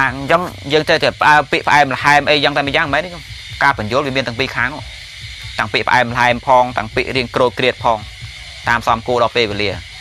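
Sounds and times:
man preaching: 0:00.0 - 0:09.9.

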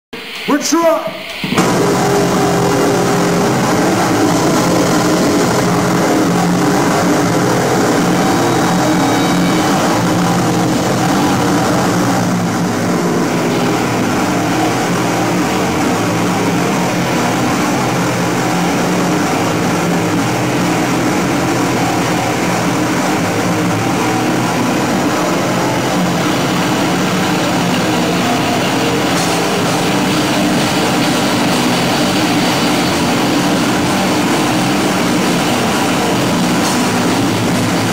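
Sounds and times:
drums: 0:00.1 - 0:37.9
distorted electric guitars: 0:00.2 - 0:37.9.

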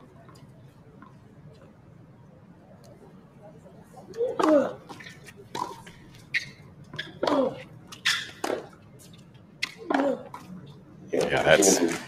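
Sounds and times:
tennis ball hit by rackets: 0:08.2 - 0:08.8.

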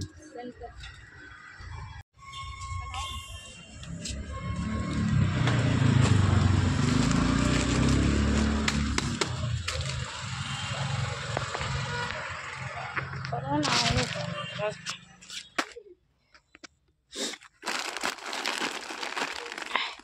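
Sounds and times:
plastic snack packets crinkling: 0:17.4 - 0:20.0.

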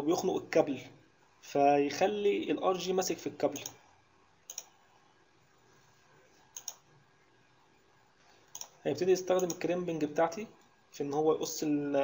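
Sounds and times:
computer mouse clicking: 0:03.5 - 0:03.8, 0:04.5 - 0:04.8, 0:06.5 - 0:06.9, 0:08.5 - 0:08.8, 0:09.4 - 0:09.7.

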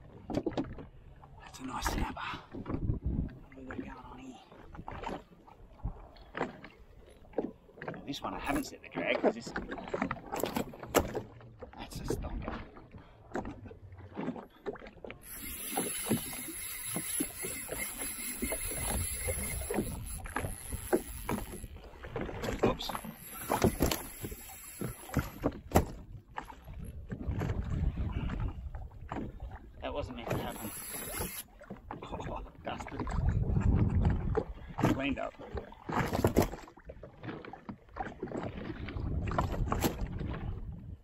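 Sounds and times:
water slapping against hull: 0:00.0 - 0:41.0
wind on microphone: 0:02.6 - 0:03.4, 0:15.2 - 0:29.5, 0:33.0 - 0:34.9, 0:38.6 - 0:41.0
fishing reel spinning: 0:15.2 - 0:21.9, 0:22.8 - 0:25.5, 0:30.3 - 0:31.5.

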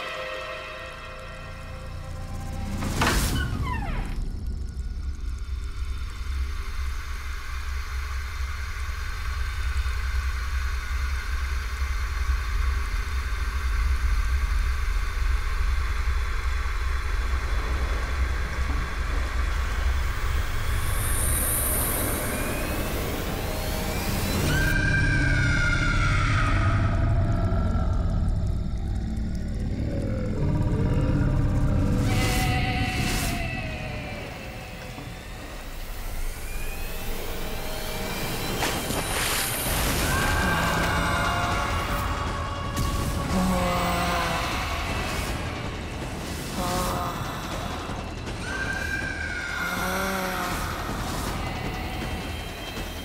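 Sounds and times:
low rumbling drone: 0:00.0 - 0:53.0.

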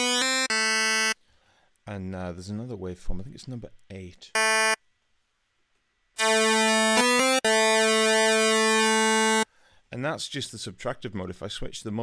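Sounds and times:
bright buzzy synthesizer note: 0:00.0 - 0:01.2, 0:04.4 - 0:04.8, 0:06.2 - 0:09.4.

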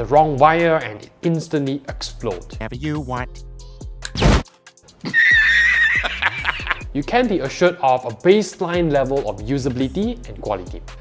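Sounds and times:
sharp loud cartoon burst: 0:04.2 - 0:04.4
high wavering held cry: 0:05.0 - 0:06.8.

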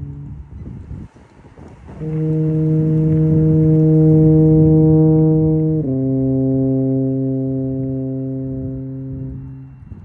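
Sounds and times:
tuba playing sustained notes: 0:02.0 - 0:10.0.

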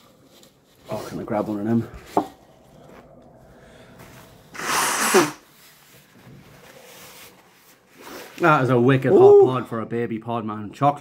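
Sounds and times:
man blowing nose: 0:04.5 - 0:05.6.

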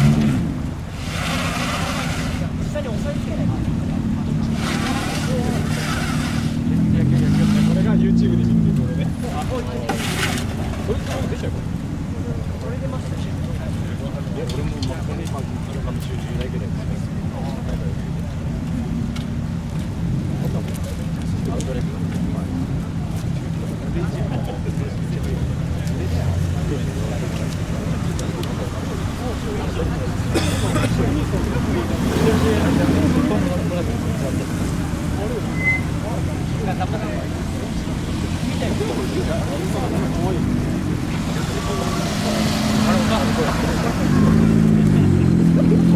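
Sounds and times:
car engine revving: 0:00.0 - 0:15.5, 0:24.5 - 0:45.9
people's voices: 0:00.0 - 0:45.9.

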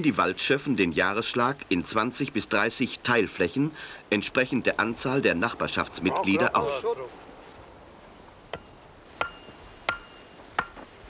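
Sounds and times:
axe striking wooden stake: 0:08.5 - 0:10.8.

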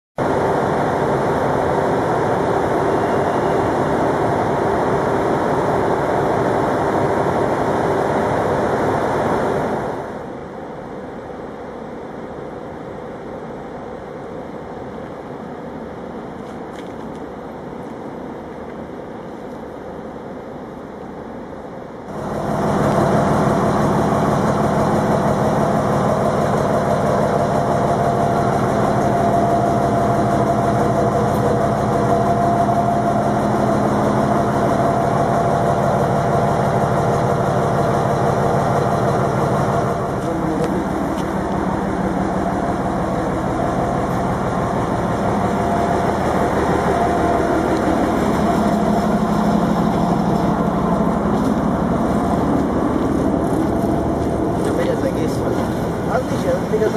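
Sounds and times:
diesel rail engine running: 0:00.2 - 0:56.9.

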